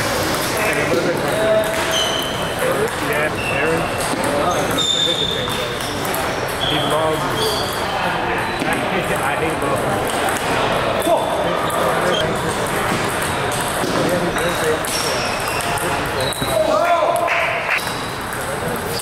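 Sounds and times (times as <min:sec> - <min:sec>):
chatter of voices: 0:00.4 - 0:19.0
table tennis ball clicking: 0:12.5 - 0:13.8.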